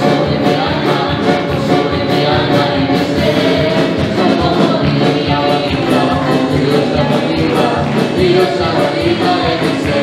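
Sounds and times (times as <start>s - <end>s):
instrumental accompaniment with beat: 0.0s - 10.0s
women singing into microphones: 0.0s - 10.0s.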